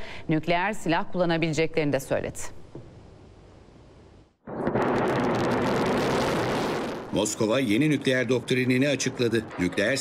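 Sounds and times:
rocket motor roaring: 4.5 - 7.3
sharp cracks: 4.5 - 7.4.

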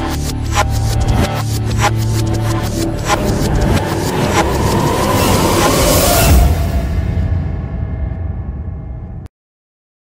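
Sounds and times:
electronic music: 0.0 - 7.8
sharp hits: 0.6 - 9.2
heavy low rumble: 1.6 - 9.3.

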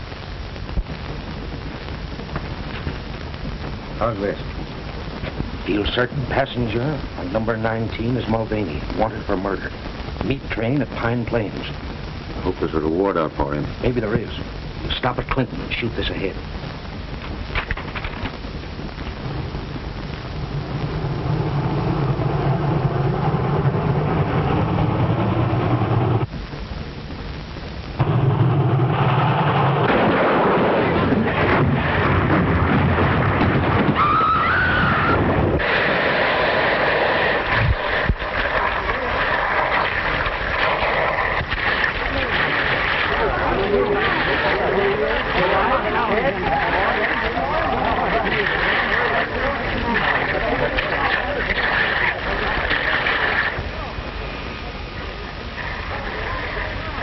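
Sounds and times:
loud crashing and rumbling: 28.0 - 53.7.

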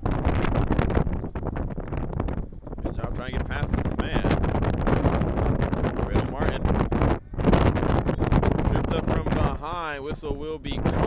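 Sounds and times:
wind buffeting microphone: 0.0 - 11.0
long wavering yell: 7.0 - 8.3.

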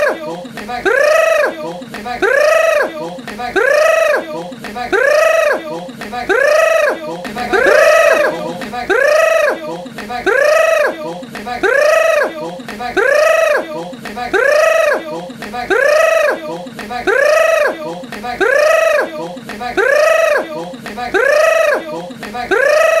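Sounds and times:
voice-like rising and falling cry: 7.4 - 8.7.

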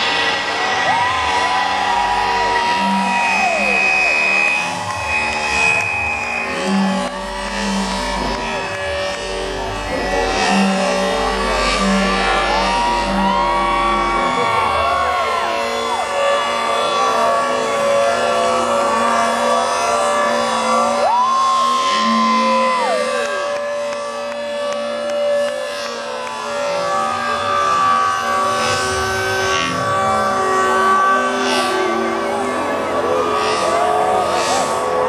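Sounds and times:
loud electronic dance music: 0.0 - 25.5, 26.4 - 35.0.

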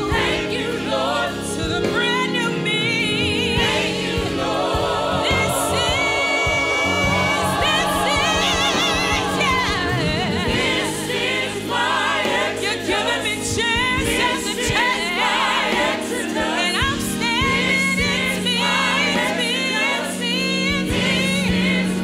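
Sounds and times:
group singing gospel: 0.0 - 22.0
keyboard accompaniment: 0.0 - 22.0.

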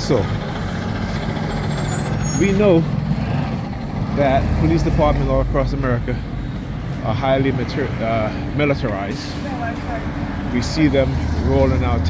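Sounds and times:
low traffic hum: 0.0 - 12.0
vehicle engine running: 0.0 - 12.0.

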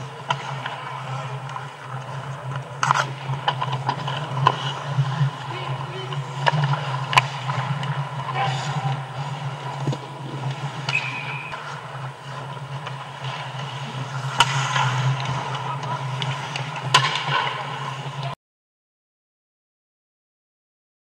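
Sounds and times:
hockey sticks working puck: 0.0 - 18.4
skates scraping ice: 0.0 - 18.4
steady low hum: 0.0 - 18.4.

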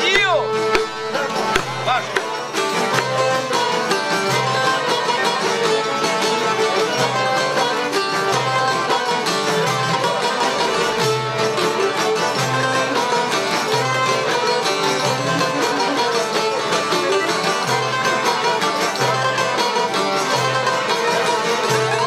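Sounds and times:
frame drum beating: 0.0 - 5.2
accordion: 0.0 - 22.0
plucked lute: 0.0 - 22.0
violin: 0.0 - 22.0.

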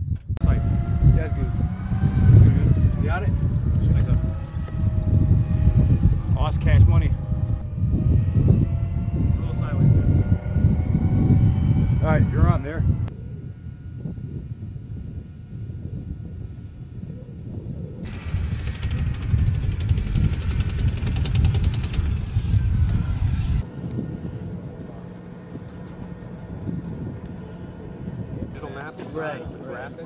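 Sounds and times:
low hum with steady tone: 0.0 - 20.5, 22.0 - 30.0
tank engine rumble: 18.1 - 29.2.

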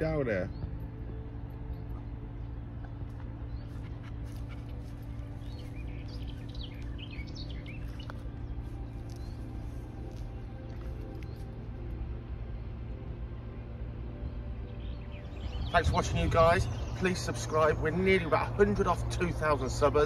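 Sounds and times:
small birds chirping: 0.0 - 20.0
steady low hum: 0.0 - 20.0.

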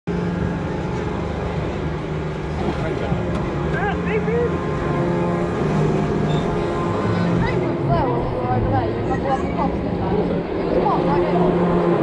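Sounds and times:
ride mechanical hum: 0.1 - 12.0.

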